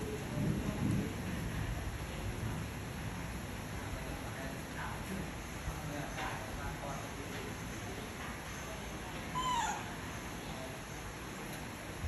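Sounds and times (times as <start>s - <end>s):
baby macaque high call: 9.3s - 10.0s.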